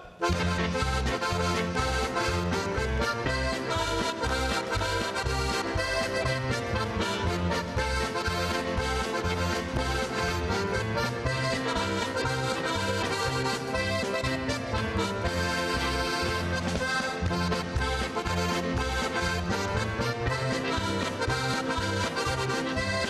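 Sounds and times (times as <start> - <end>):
button accordion playing polka: 0.0 - 23.0
band with steady bass beat: 0.2 - 23.0.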